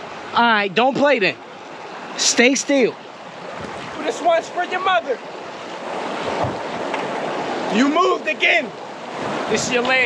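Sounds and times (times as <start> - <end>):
creek water running: 0.0 - 10.0
wind on microphone: 3.3 - 4.2, 5.2 - 7.8, 8.8 - 10.0.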